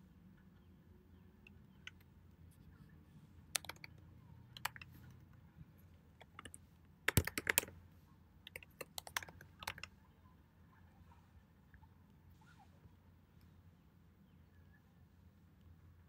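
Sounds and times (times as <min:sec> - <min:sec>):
computer keyboard typing: 0:03.5 - 0:05.2, 0:06.2 - 0:07.8, 0:08.4 - 0:10.0.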